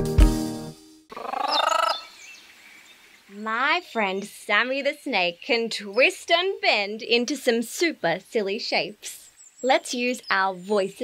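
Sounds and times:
faint hiss: 1.1 - 11.0.

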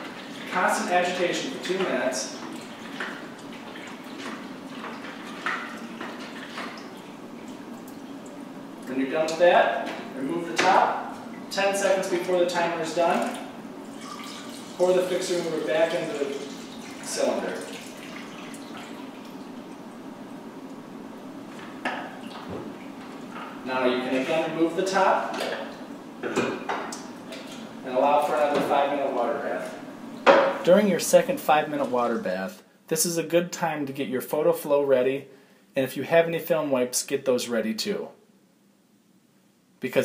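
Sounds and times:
liquid sloshing in a tank: 0.0 - 20.4
steady background hiss: 0.0 - 40.0
liquid pouring into cylinder: 13.2 - 19.9.

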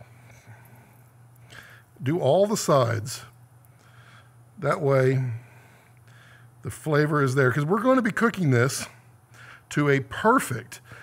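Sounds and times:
steady low hum: 0.0 - 11.0
intake of breath: 3.8 - 4.4, 5.3 - 6.6.

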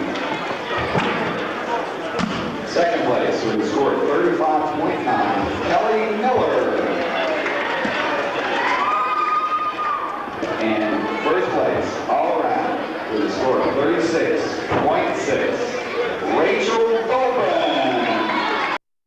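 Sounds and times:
crowd chatter in echoing hall: 0.0 - 18.8.

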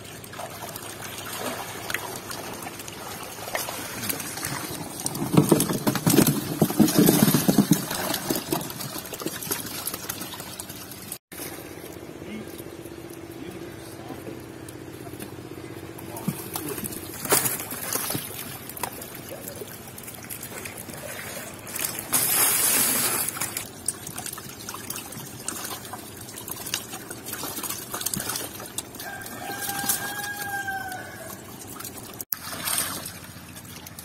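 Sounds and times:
water splashing and trickling: 0.0 - 34.0.

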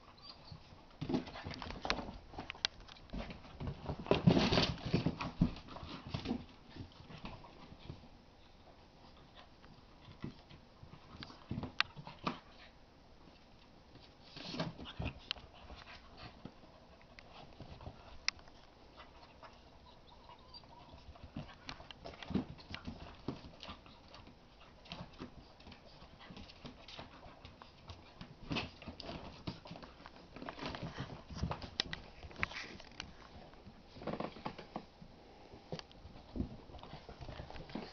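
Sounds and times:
puppy noises: 0.0 - 2.5, 14.4 - 33.4
puppies scuffling on floor: 0.1 - 8.1, 13.3 - 37.9.

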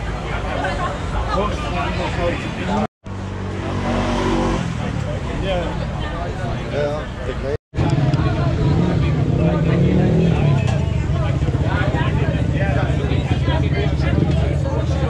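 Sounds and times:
people chattering: 0.0 - 15.0
vehicle engines rumbling: 0.0 - 15.0.

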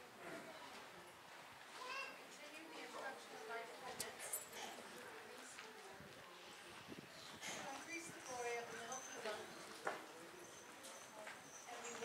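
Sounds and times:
faint distant speech: 0.0 - 12.0.

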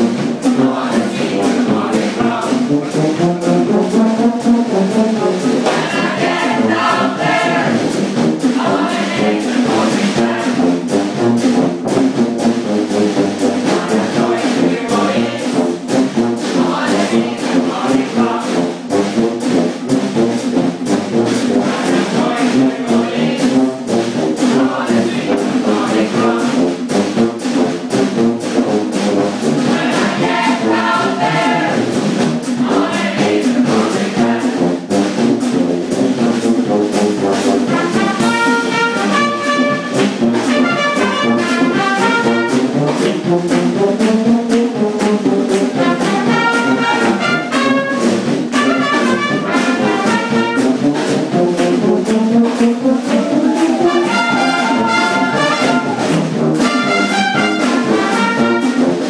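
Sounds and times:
brass band playing: 0.0 - 59.0
steady percussion beat: 0.0 - 59.0
many voices singing together: 0.3 - 3.0, 5.4 - 11.0, 13.5 - 15.6, 16.4 - 19.0, 21.4 - 23.7, 24.4 - 26.8, 29.6 - 35.0, 45.6 - 47.6, 53.0 - 56.1.

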